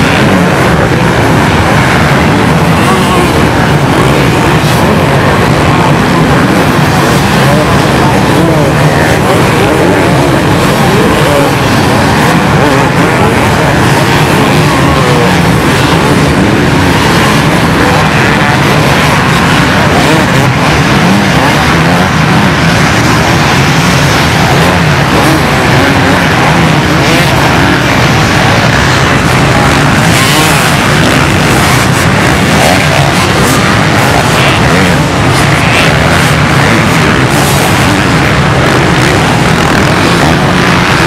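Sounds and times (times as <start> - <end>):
dirt bikes revving together: 0.0 - 41.0.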